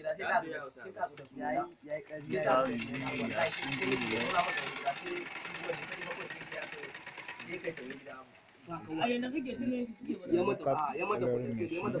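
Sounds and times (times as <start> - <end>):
sewing machine clattering: 2.3 - 8.7.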